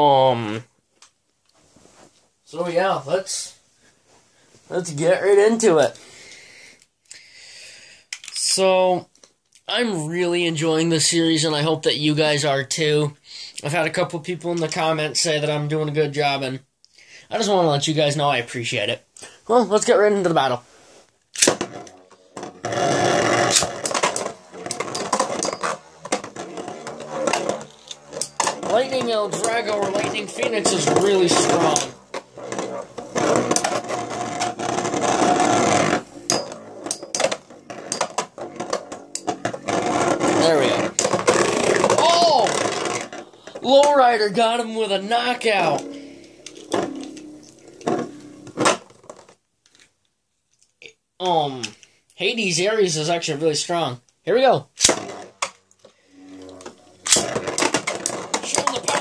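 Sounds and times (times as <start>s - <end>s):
spinning tops whirring and rattling: 21.6s - 48.6s.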